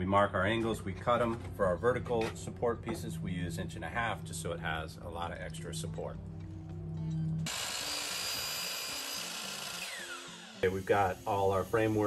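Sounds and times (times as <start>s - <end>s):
background music: 0.0s - 12.0s
miter saw cutting wood: 7.5s - 12.0s
saw blade whine: 7.5s - 12.0s.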